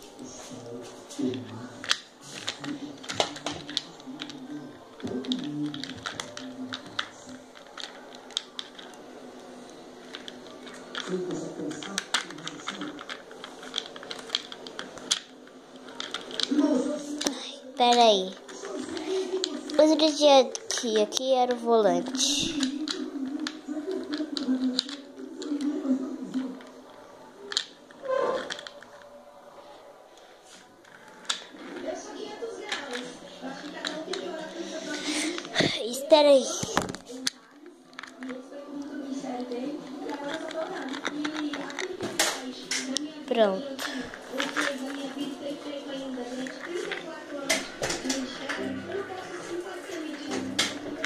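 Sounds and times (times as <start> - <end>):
plastic toys clicking: 1.3 - 29.2, 30.8 - 49.1, 49.9 - 51.0.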